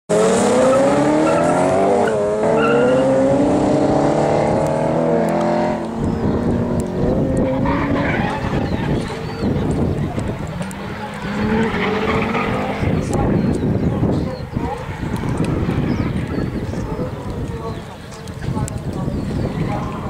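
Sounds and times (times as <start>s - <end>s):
car engines revving hard: 0.1s - 20.0s
tyres skidding: 0.1s - 20.0s.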